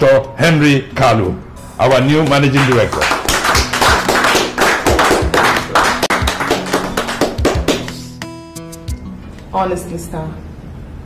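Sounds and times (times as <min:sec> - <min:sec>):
background music: 0:00.0 - 0:10.3
people applauding: 0:02.2 - 0:08.1.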